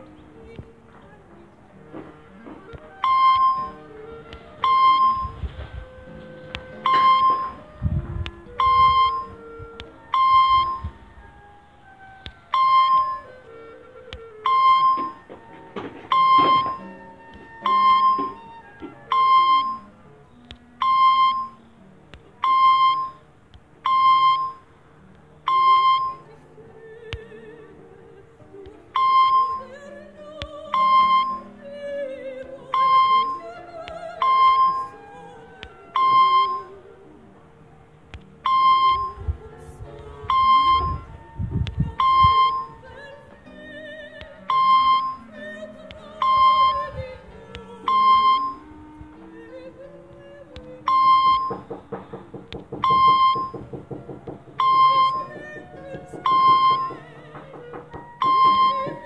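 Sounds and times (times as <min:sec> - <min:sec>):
background music: 0:00.0 - 0:59.0
short electronic beep: 0:03.0 - 0:03.8, 0:04.6 - 0:05.4, 0:06.8 - 0:07.6, 0:08.6 - 0:09.4, 0:10.1 - 0:10.9, 0:12.5 - 0:13.3, 0:14.4 - 0:15.2, 0:16.1 - 0:16.9, 0:17.6 - 0:18.4, 0:19.1 - 0:19.9, 0:20.8 - 0:21.6, 0:22.4 - 0:23.2, 0:23.9 - 0:24.6, 0:25.5 - 0:26.2, 0:29.0 - 0:29.6, 0:38.4 - 0:39.2, 0:40.3 - 0:41.0, 0:42.0 - 0:42.7.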